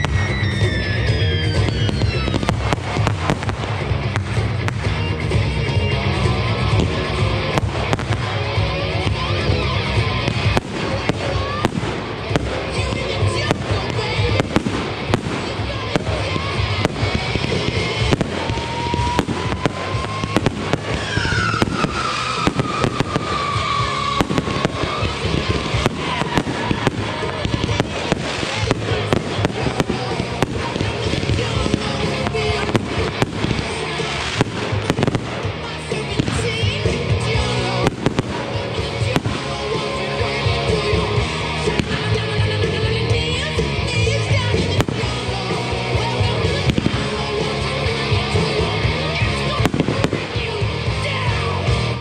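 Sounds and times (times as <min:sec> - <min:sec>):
fireworks shells bursting: 0:00.0 - 0:50.6
fireworks bangs and crackle: 0:00.0 - 0:52.0.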